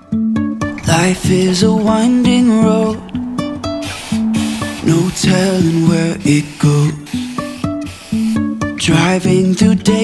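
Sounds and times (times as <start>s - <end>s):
acoustic guitar music: 0.0s - 10.0s
aerosol spray hissing: 0.9s - 9.2s.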